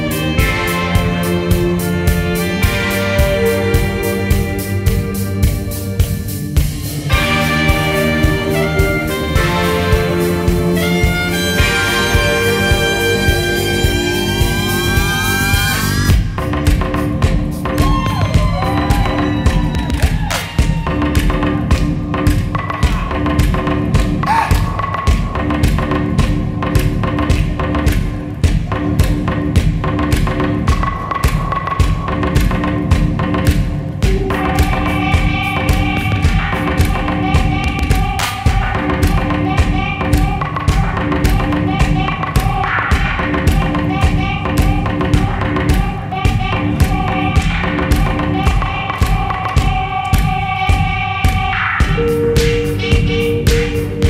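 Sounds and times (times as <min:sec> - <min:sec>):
live band instrumental music: 0:00.0 - 0:20.8, 0:51.6 - 0:54.0
string section notes: 0:07.1 - 0:16.1
kick drum thumps: 0:16.1 - 0:53.7.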